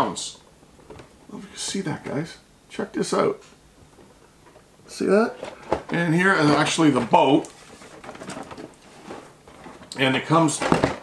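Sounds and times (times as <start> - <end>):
cardboard box rustling: 5.4 - 11.0.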